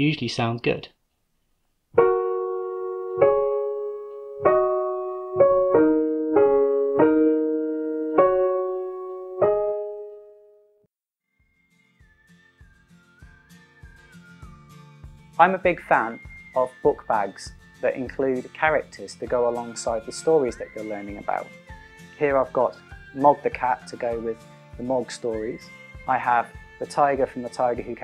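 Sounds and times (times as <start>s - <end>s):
digital piano pentatonic tune: 2.0s - 10.8s.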